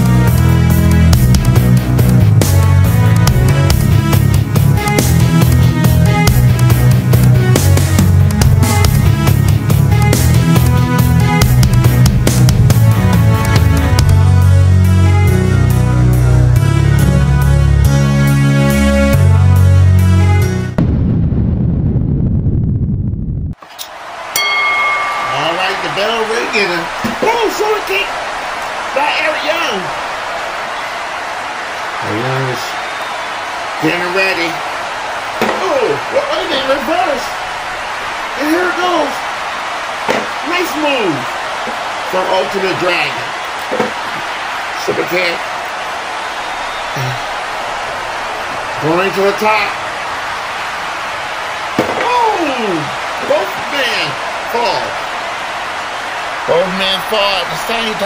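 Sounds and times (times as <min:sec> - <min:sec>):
low rumble: 0:20.8 - 0:23.6
ring bell ding: 0:24.3 - 0:26.3.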